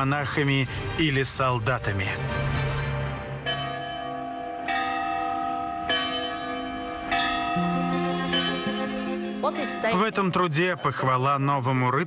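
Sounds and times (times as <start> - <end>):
low sustained background music: 0.0 - 5.0, 6.5 - 12.0
bell ringing: 3.4 - 11.7.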